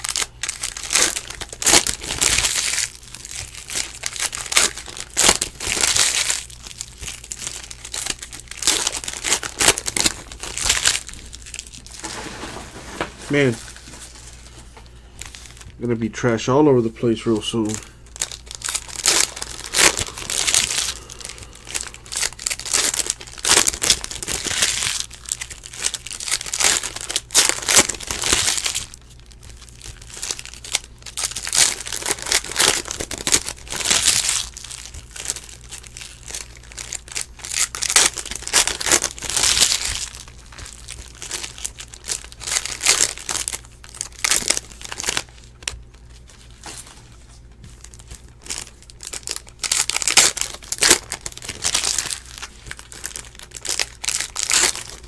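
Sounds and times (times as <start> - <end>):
foil wrappers crinkling and tearing: 0.0 - 16.4, 17.0 - 55.0.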